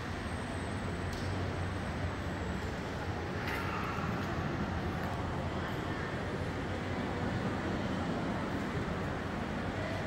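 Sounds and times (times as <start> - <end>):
fans: 0.0 - 10.0
room hum: 0.0 - 10.0.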